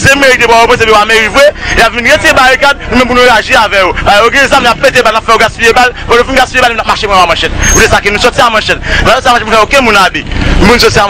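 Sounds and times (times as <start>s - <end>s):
person speaking rapidly: 0.0s - 11.0s.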